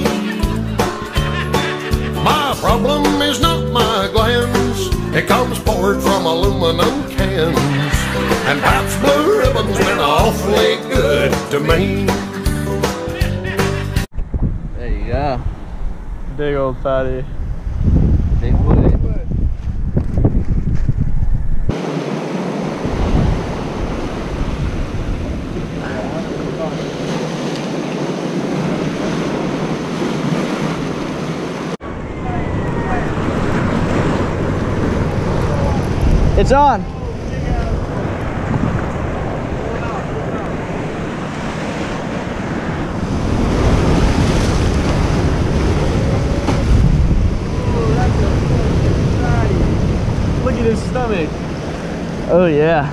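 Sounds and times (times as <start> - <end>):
wind buffeting microphone: 14.1 - 52.9
surf breaking over rocks: 21.7 - 52.9.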